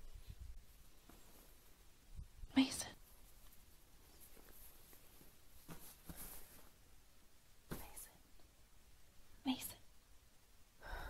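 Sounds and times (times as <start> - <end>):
faint whisper: 2.3 - 3.3, 7.7 - 8.5, 9.4 - 10.0.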